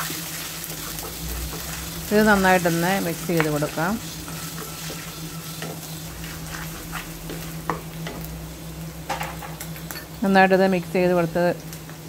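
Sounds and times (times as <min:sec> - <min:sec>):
onions sizzling in hot oil: 0:00.0 - 0:12.0
steady low hum: 0:00.0 - 0:12.0.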